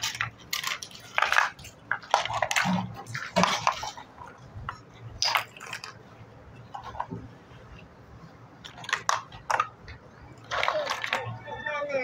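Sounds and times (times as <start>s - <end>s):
plastic toy blocks clattering: 0.0s - 6.0s, 8.6s - 11.4s.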